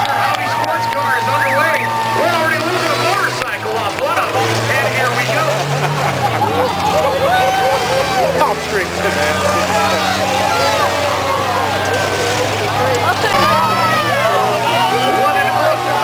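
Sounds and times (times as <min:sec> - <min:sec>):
race car engines droning: 0:00.0 - 0:16.0
spectators chattering and calling out: 0:00.0 - 0:16.0.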